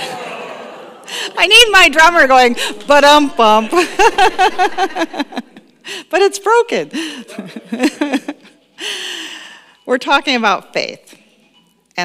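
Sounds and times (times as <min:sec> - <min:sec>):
woman laughing: 0:03.7 - 0:05.7, 0:07.0 - 0:08.6.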